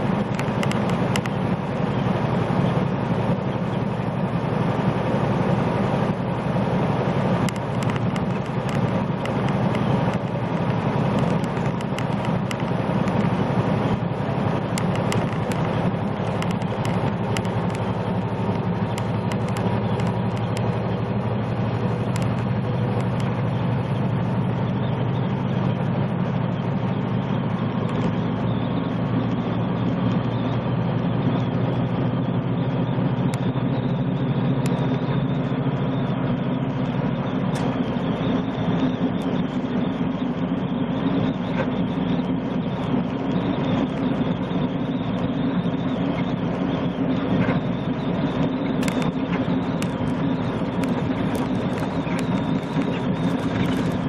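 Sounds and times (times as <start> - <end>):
truck engine and tyre drone: 0.0 - 54.0.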